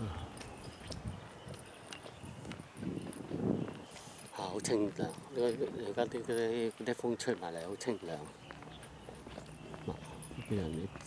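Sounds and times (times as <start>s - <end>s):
footsteps on concrete: 0.0s - 11.0s.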